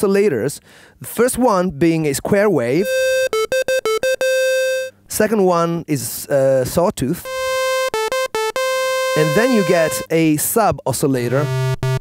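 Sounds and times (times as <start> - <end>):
square-wave synthesizer notes: 2.8 - 5.0, 7.2 - 10.1, 11.3 - 12.0.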